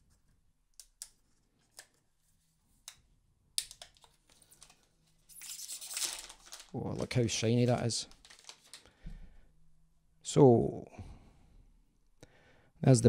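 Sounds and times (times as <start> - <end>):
plastic film peeling: 3.7 - 8.9
plastic film crinkling: 4.0 - 8.9.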